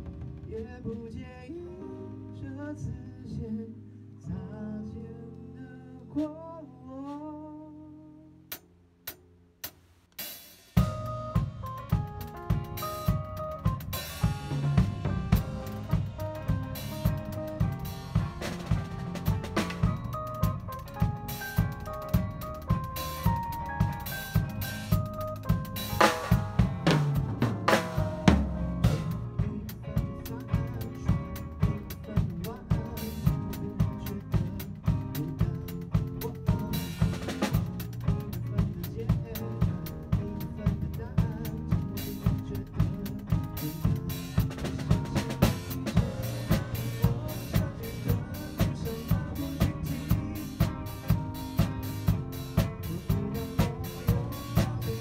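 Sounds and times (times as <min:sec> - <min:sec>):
drum kit groove: 0:00.0 - 0:01.2, 0:08.5 - 0:55.0
accompanying music: 0:10.8 - 0:55.0.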